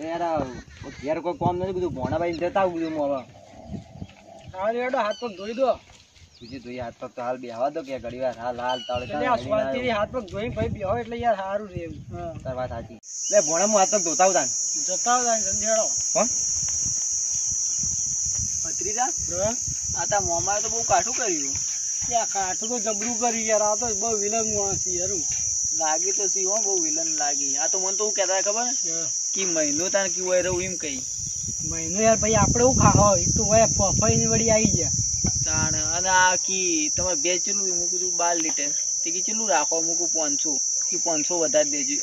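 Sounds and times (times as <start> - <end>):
insects chirring: 0.0 - 42.0.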